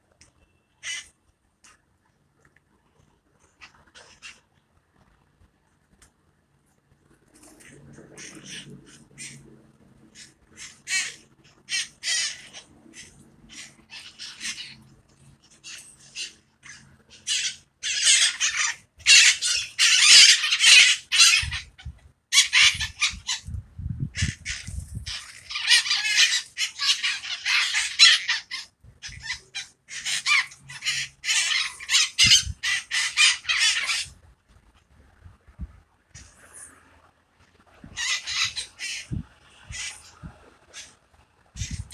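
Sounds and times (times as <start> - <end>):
parakeets squawking: 0.8 - 1.1, 8.0 - 9.4, 10.2 - 23.5, 24.2 - 34.2, 37.8 - 40.9, 41.6 - 41.9.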